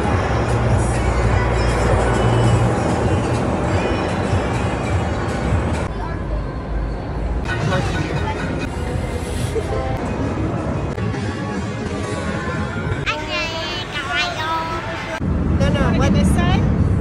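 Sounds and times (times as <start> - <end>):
music: 0.0 - 15.2
steady low rumble: 0.0 - 17.0.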